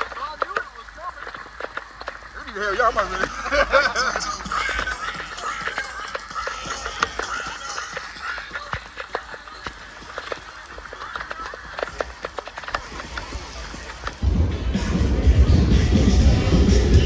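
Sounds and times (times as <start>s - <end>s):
raindrops ticking near microphone: 0.0s - 14.5s
heavy rain pouring: 0.0s - 17.0s.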